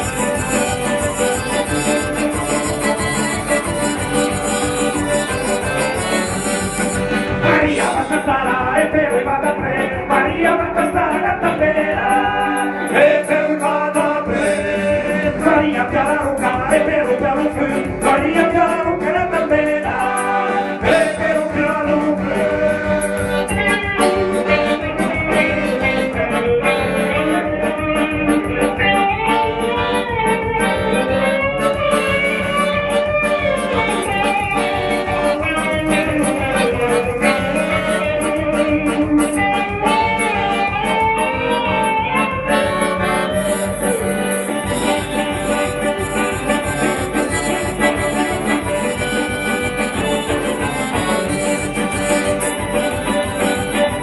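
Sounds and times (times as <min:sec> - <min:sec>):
keyboard: 0:00.0 - 0:54.0
melodic lead line: 0:00.0 - 0:54.0
steady drum beat: 0:00.0 - 0:54.0.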